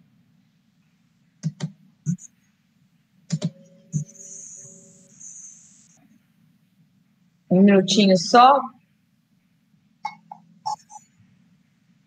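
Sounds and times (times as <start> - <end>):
constant low hum: 0.0 - 12.0
computer clicks: 1.4 - 2.3, 3.3 - 5.5
thin high hiss: 4.0 - 6.0.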